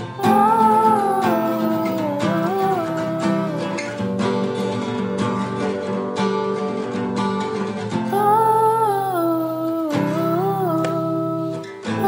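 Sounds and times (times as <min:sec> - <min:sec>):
man humming a melody: 0:00.0 - 0:05.2, 0:08.1 - 0:11.8
acoustic guitar chord: 0:00.0 - 0:12.0.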